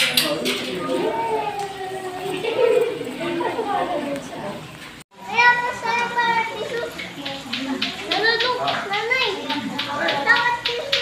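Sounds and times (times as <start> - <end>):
child calling out: 0.8 - 2.4.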